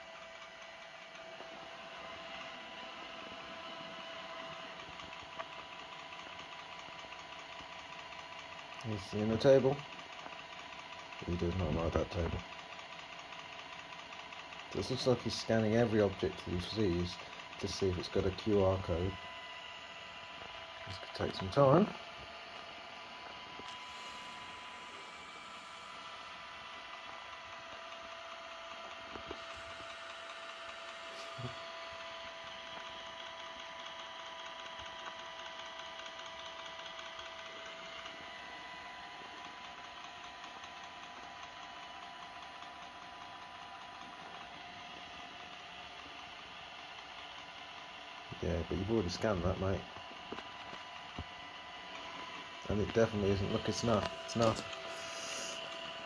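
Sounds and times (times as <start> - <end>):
robot vacuum whirring: 0.0 - 56.0.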